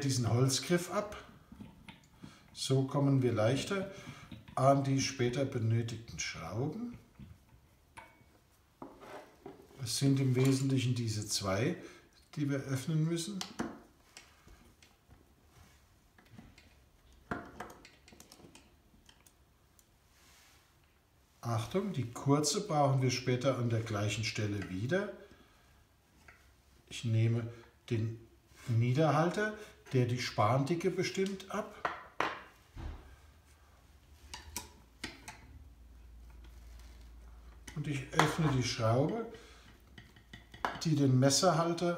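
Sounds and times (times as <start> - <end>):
faint metal clicks and taps: 1.5 - 2.5, 16.2 - 20.0, 34.3 - 35.6, 39.6 - 40.9.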